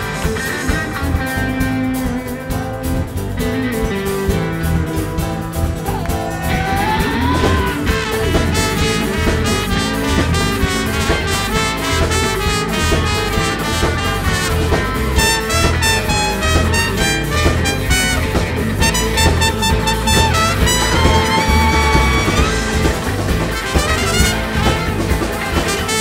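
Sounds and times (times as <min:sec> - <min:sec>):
acoustic and electric guitars: 0:00.0 - 0:26.0
steady drum beat: 0:00.0 - 0:26.0
trumpet playing: 0:07.4 - 0:26.0.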